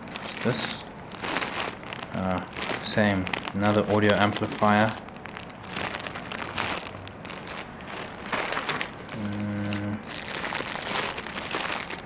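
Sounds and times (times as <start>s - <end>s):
plastic bags crinkling: 0.0s - 12.0s
low hum like a man humming: 8.0s - 11.5s.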